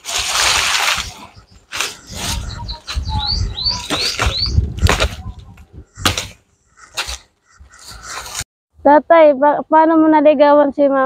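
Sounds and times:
bird chirping: 0:01.0 - 0:05.6.

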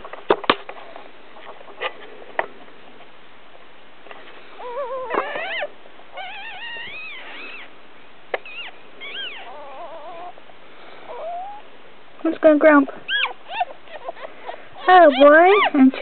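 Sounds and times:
puppies whining and squealing: 0:04.5 - 0:07.8, 0:08.4 - 0:10.4, 0:11.0 - 0:11.7, 0:13.0 - 0:16.0.

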